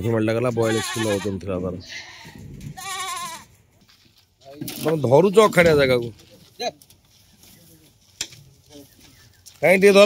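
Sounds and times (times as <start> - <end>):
goat bleating: 0.5 - 3.6.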